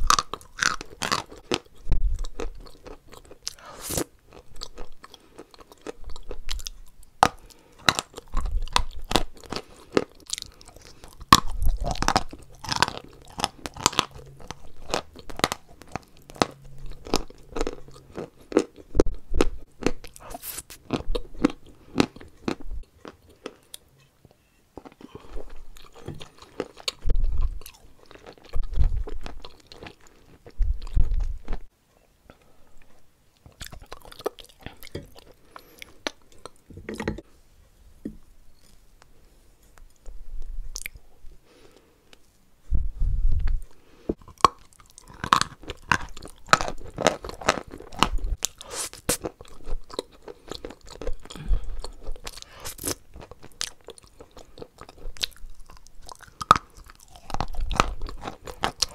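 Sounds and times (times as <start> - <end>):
crisp crunching chewing: 0.0 - 23.9, 24.8 - 31.7, 32.8 - 36.6, 44.2 - 58.9.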